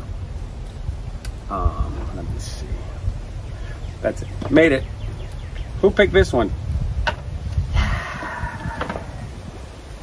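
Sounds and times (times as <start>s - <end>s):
outdoor background noise: 0.0s - 10.0s
wind rumbling on microphone: 0.0s - 10.0s.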